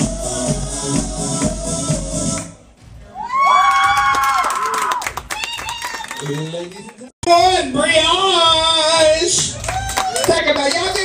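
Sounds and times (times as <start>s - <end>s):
high drawn-out whoops: 3.1s - 6.2s, 9.6s - 10.3s
audience clapping: 3.6s - 7.1s, 9.3s - 11.0s.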